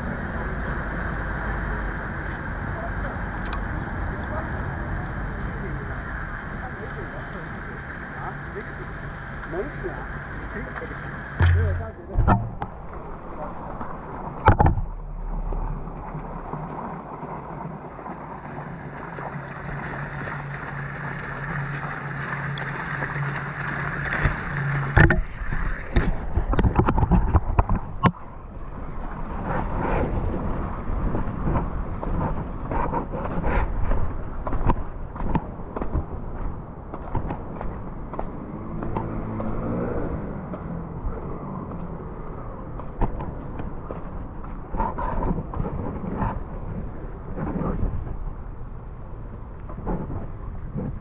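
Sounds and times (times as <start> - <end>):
street noise: 0.0 - 17.7, 18.5 - 51.0
low even hum: 0.0 - 36.9
rushing outdoor noise: 0.0 - 51.0.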